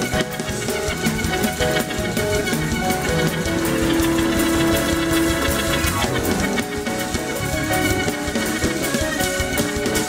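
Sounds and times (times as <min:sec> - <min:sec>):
held keyboard note: 0:00.0 - 0:10.0
keyboard chords: 0:00.0 - 0:10.0
quick steady drumming: 0:00.0 - 0:10.0.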